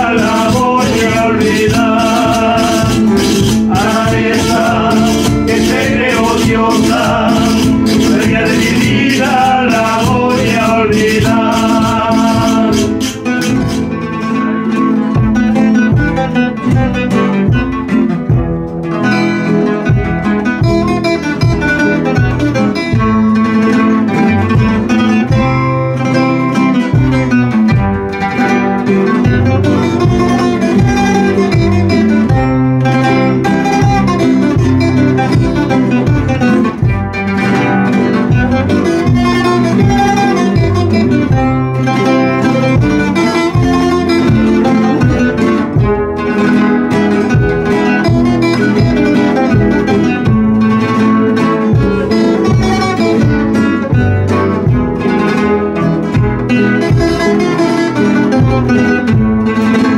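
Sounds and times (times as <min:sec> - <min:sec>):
acoustic guitars strummed and plucked: 0:00.0 - 0:59.9.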